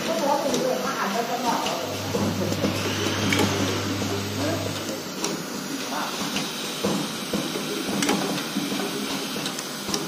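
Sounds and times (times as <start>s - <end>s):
vibratory bowl feeder humming: 1.6s - 5.8s.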